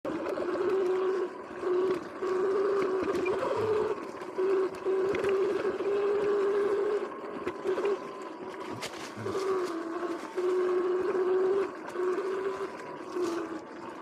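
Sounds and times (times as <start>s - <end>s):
electric motor whining: 0.0s - 14.0s.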